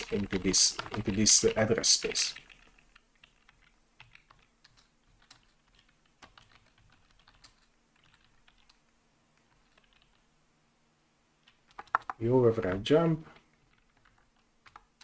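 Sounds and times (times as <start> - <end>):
typing on keyboard: 0.0 - 10.2, 11.4 - 12.8, 13.4 - 15.0.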